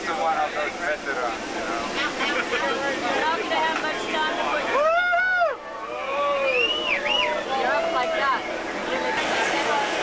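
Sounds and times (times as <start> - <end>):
aircraft engines and slipstream: 0.0 - 4.8, 5.6 - 10.0
people shouting and whooping: 4.6 - 8.6
loud yell: 4.7 - 6.7.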